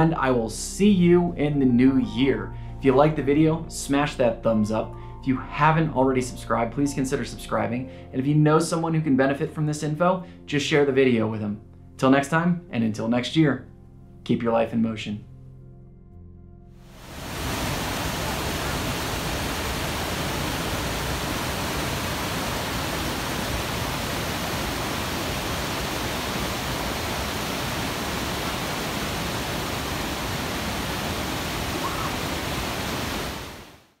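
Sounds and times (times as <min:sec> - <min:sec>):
waterfall rushing over boulders: 0:16.9 - 0:33.9.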